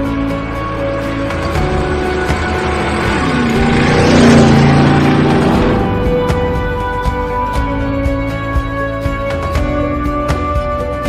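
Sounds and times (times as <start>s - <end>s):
motorcycle passing by: 0.0s - 8.3s
background music: 0.0s - 11.0s.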